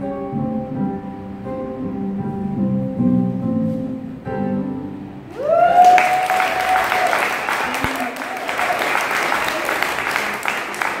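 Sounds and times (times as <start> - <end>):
person whooping: 5.3 - 9.9
audience applauding: 5.3 - 11.0.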